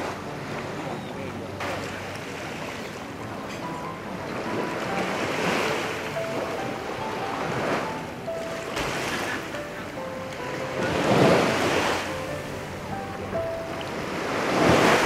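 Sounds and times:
faint melody of single notes: 0.0s - 15.0s
sea water sloshing and lapping: 0.0s - 15.0s.

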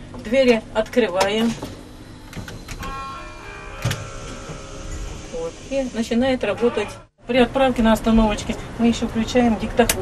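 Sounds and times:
steady electric whine: 1.4s - 7.2s.

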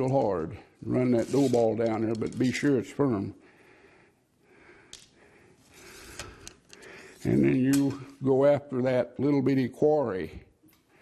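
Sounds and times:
ramrod sliding in a barrel: 0.9s - 2.5s
soft breathing: 3.4s - 7.3s.

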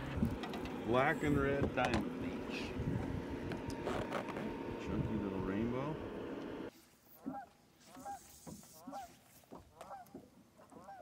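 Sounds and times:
wind noise: 1.6s - 4.0s
geese honking: 9.8s - 11.0s.

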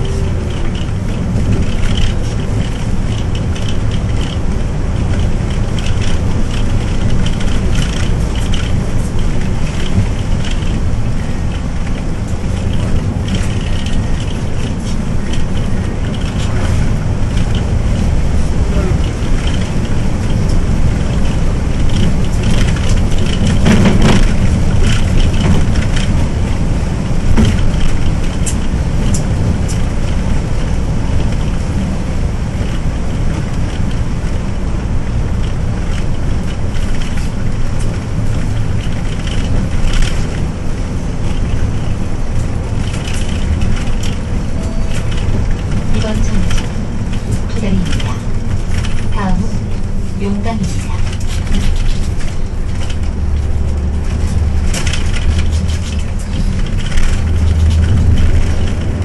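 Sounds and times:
bus body rattling: 0.0s - 59.0s
bus engine and road noise: 0.0s - 59.0s.

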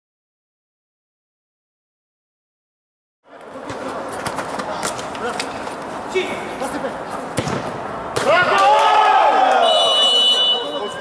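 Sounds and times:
crowd and hall noise: 3.3s - 11.0s
players' voices: 3.3s - 11.0s
ball being kicked: 7.3s - 8.5s.

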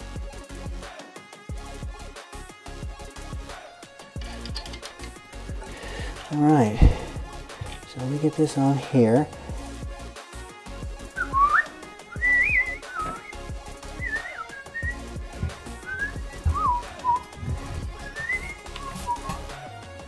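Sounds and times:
person whistling a tune: 11.1s - 19.6s.

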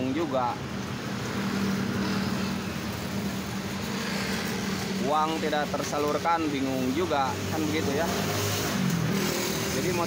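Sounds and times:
traffic noise: 0.0s - 10.0s.

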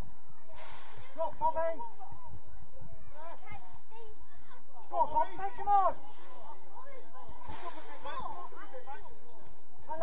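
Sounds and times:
spectators chattering and calling: 0.0s - 10.0s.

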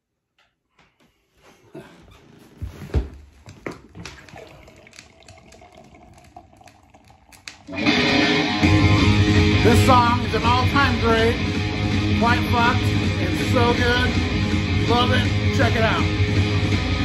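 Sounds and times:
heavy rock music: 7.8s - 17.0s.

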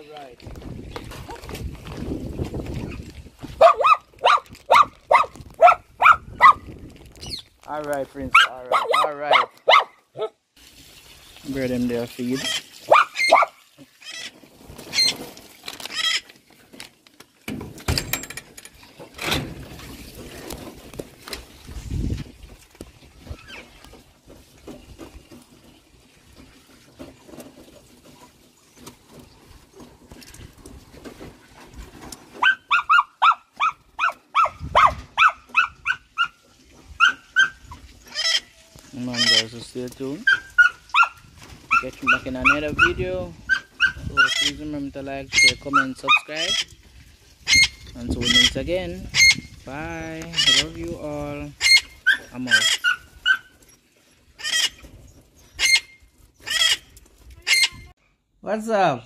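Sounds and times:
high-pitched animal cries: 54.4s - 54.8s, 55.6s - 57.9s.

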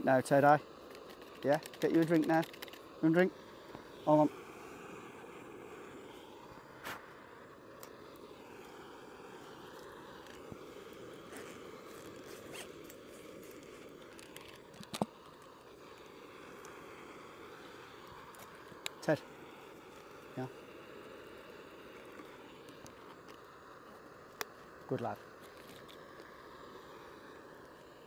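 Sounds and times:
gas stove hissing: 0.0s - 28.0s
backpack zip being undone: 11.3s - 13.6s.

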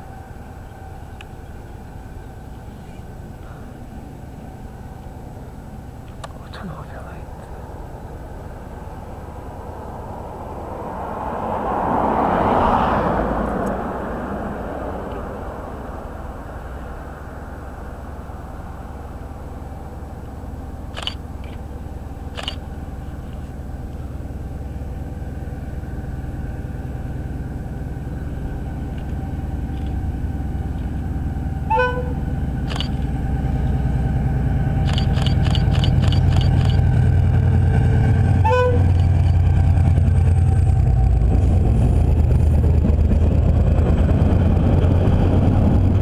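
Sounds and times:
diesel locomotive engine rumble: 0.0s - 46.0s
quick clicks: 21.0s - 21.6s, 22.4s - 22.6s, 32.7s - 33.1s, 34.9s - 36.8s
train horn toots: 31.6s - 32.4s, 37.8s - 39.2s.

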